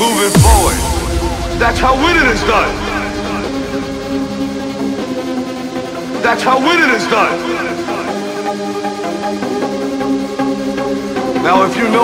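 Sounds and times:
held synthesizer chords: 0.3 - 6.0.

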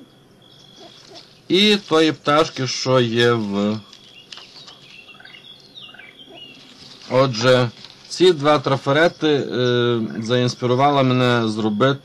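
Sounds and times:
faint bird chirps: 0.0 - 11.0
plastic sheets clicking: 3.8 - 4.9.

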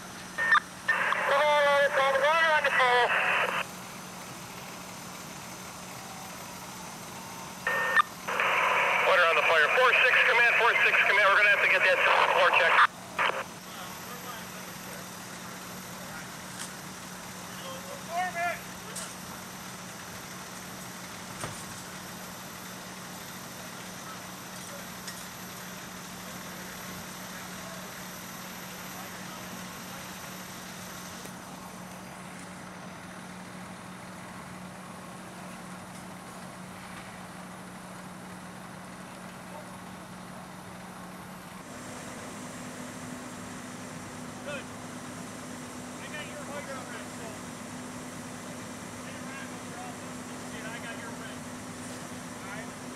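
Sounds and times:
fire engine pump droning: 0.0 - 52.9.

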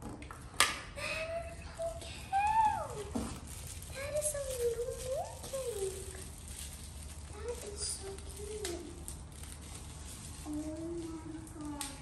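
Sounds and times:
steamer and plastic wrap handled: 1.1 - 12.0.

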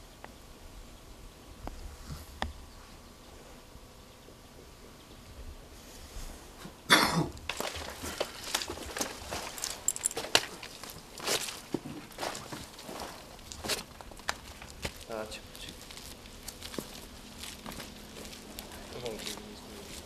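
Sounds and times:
footsteps on dry brush: 7.4 - 20.0
leaves and twigs crackling: 7.4 - 20.0.

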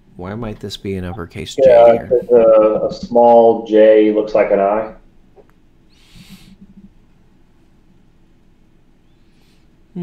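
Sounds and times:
man humming mm: 1.6 - 3.2
short breath: 5.9 - 6.7.

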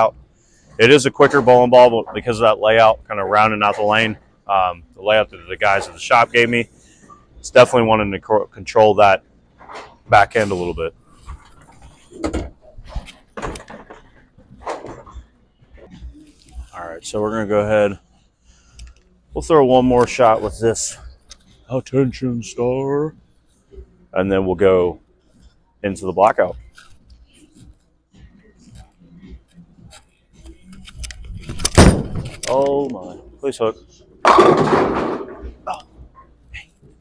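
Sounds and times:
bowling knocks with clatter: 34.2 - 36.1.

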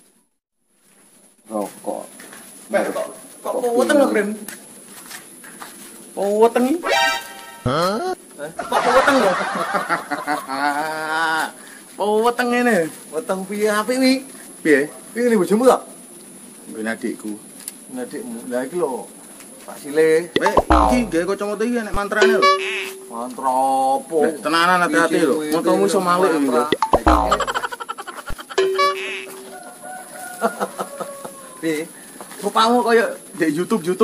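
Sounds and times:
man talking: 7.6 - 8.1, 20.4 - 21.3.

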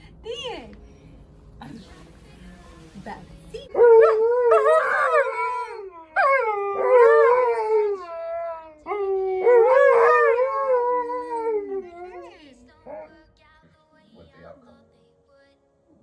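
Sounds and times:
dogs howling: 3.8 - 13.1.

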